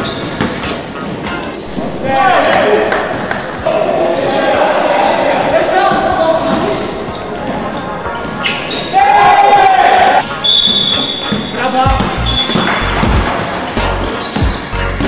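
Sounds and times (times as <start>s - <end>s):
players shouting: 1.6s - 14.3s
basketball bouncing on hardwood: 11.3s - 13.5s.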